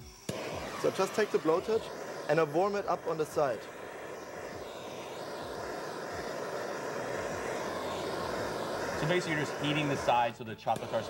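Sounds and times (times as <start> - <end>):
blowtorch flame hissing: 0.0 - 11.0.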